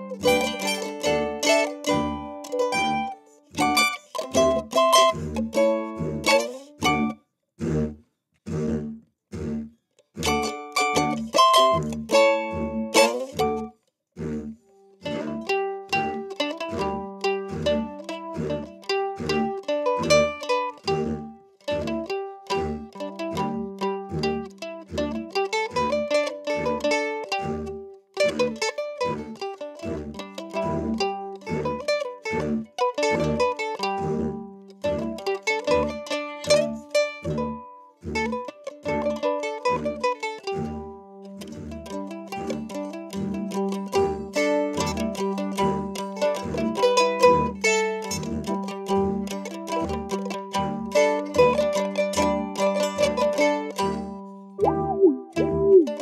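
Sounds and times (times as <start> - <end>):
mandolin picked: 0.0 - 7.2, 10.1 - 13.8, 15.0 - 56.0
steady low beat: 54.6 - 56.0.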